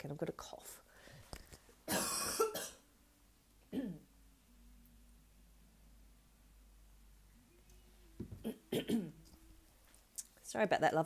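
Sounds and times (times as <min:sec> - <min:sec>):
woman clearing her throat: 0:01.9 - 0:02.8, 0:03.7 - 0:04.1, 0:08.4 - 0:09.2
woman coughing: 0:01.9 - 0:02.8, 0:03.7 - 0:04.1, 0:08.4 - 0:09.2.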